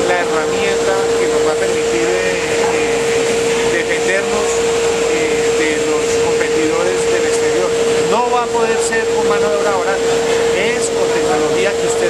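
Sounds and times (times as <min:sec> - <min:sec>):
recycling machine droning: 0:00.0 - 0:12.0.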